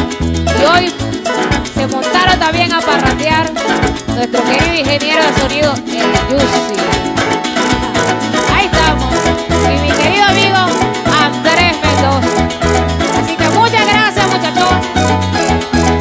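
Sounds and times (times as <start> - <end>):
bass line: 0.0 - 16.0
maraca rhythm: 0.0 - 16.0
plucked harp: 0.0 - 16.0.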